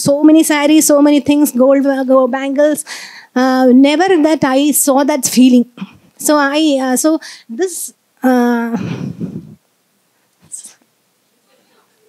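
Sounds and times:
woman whispering into microphone: 10.4 - 10.8.

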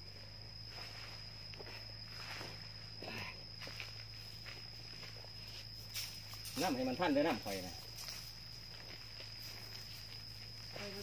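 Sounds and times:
high-pitched insect tone: 0.0 - 11.0
footsteps on sandy ground: 0.5 - 6.7, 7.8 - 11.0.

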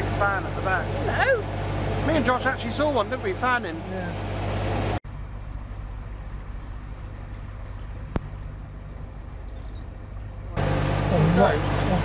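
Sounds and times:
boat diesel engine droning: 0.0 - 12.0.

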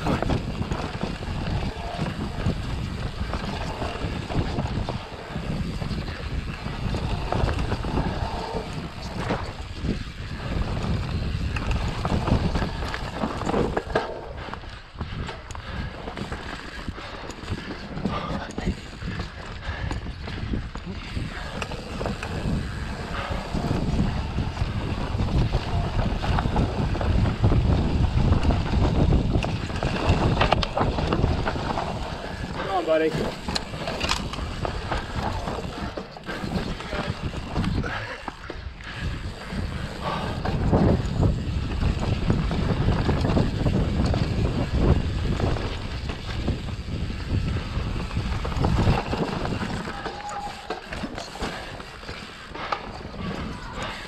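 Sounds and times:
tyres rumbling over dirt: 0.0 - 14.4, 20.4 - 54.0
bike knocks and rattles: 0.0 - 54.0
wind buffeting microphone: 0.0 - 54.0
rider calling out: 49.8 - 51.1.

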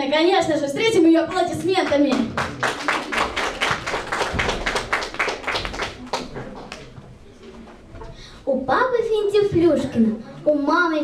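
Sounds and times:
audience clapping: 1.3 - 7.0.

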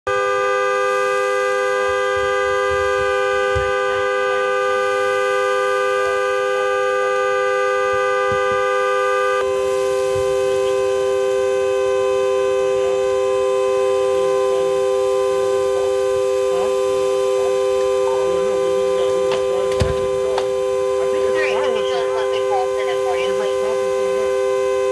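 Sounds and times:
car horn sounding continuously: 0.0 - 24.9.

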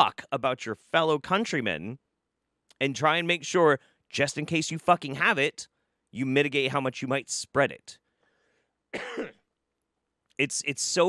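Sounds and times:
man coughing: 8.9 - 9.5.

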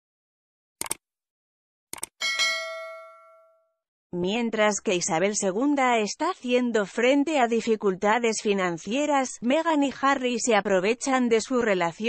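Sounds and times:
bright bell ding: 2.2 - 3.8.

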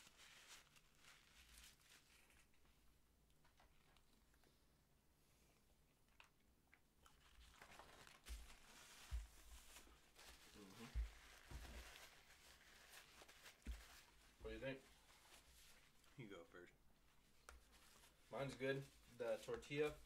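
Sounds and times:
paper rustling and crinkling: 0.0 - 2.8, 7.0 - 16.2, 17.2 - 20.0.

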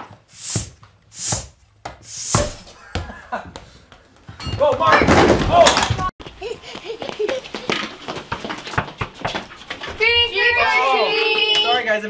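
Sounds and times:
bicycle pump hissing: 0.3 - 2.6.

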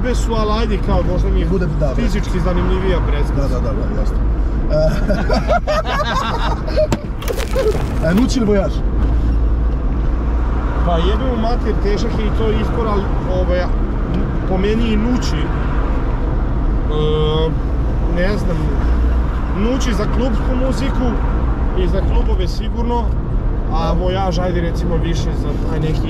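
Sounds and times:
car engine and road noise: 0.0 - 26.0
men laughing loudly: 4.7 - 7.9.

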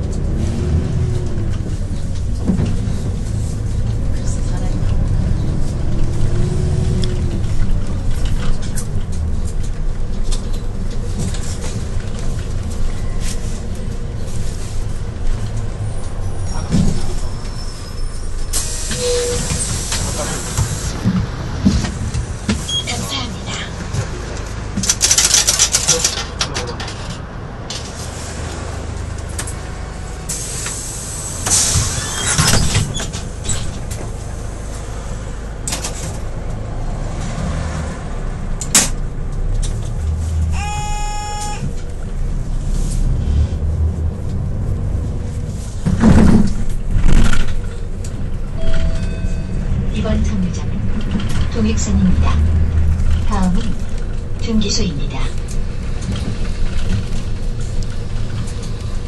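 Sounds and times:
bus engine and road rumble: 0.0 - 59.0
air brakes hissing: 17.5 - 21.0, 30.3 - 32.7.

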